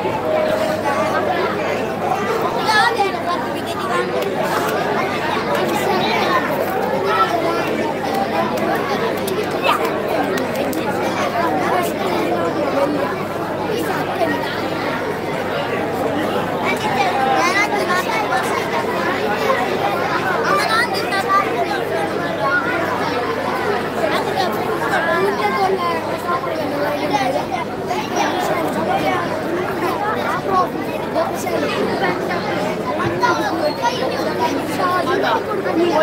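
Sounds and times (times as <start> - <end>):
babble of overlapping voices: 0.0 - 36.0.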